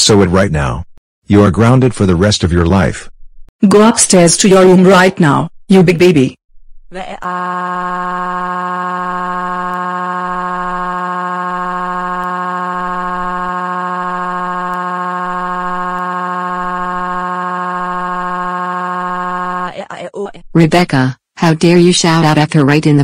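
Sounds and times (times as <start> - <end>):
text-to-speech voice wailing: 6.9 - 21.6.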